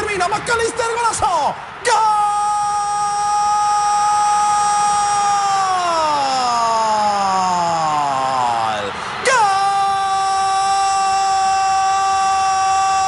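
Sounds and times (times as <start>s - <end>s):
commentator shouting goal: 0.0s - 13.0s.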